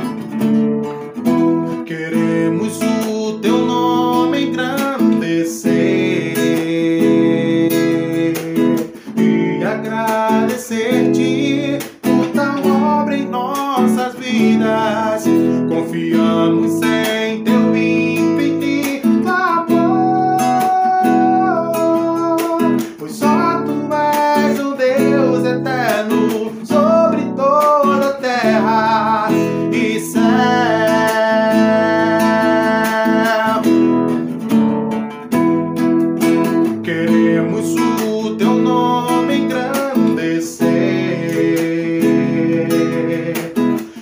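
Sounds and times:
man singing: 0.0 - 0.3, 0.9 - 34.7, 35.3 - 44.0
acoustic guitar strumming: 0.0 - 44.0.

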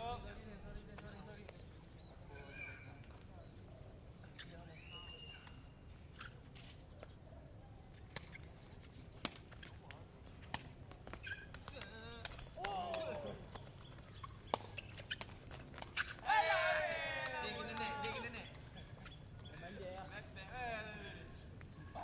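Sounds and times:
players calling out: 11.4 - 22.0
loud shout: 16.2 - 18.3.

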